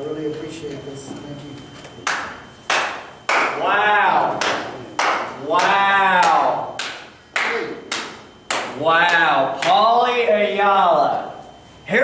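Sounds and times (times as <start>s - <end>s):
hand claps in a room: 2.0s - 3.6s, 4.2s - 9.9s.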